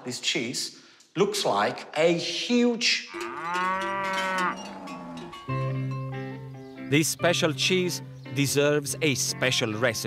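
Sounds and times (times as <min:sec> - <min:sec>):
cow mooing: 0:03.1 - 0:05.6
light guitar music: 0:05.0 - 0:10.0.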